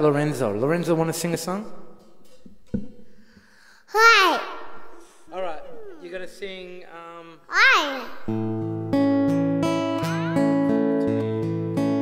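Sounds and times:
microphone knock: 2.3s - 3.0s
child's high voice: 3.9s - 6.6s, 7.4s - 8.4s.

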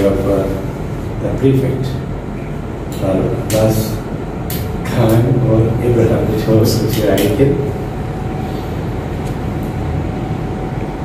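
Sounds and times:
faint constant hum: 0.0s - 11.0s
low rumble of room noise: 0.0s - 11.0s.

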